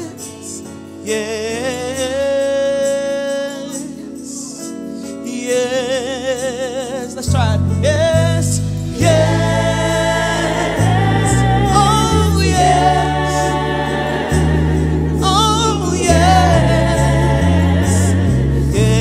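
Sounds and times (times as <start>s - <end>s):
low held bass notes: 7.2s - 19.0s
group singing gospel song: 7.8s - 19.0s.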